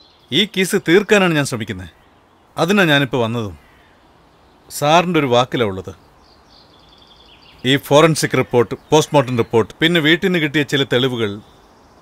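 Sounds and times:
birds chirping: 0.0 - 12.0
man talking: 0.3 - 2.0, 2.6 - 3.6, 4.7 - 6.0, 7.6 - 11.5.

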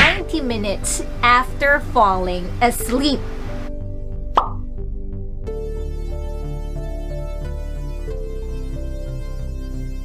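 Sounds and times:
background music: 0.0 - 10.0
electronic track with steady bass: 0.0 - 10.0
quick-rising pop sound effect: 4.3 - 4.7.

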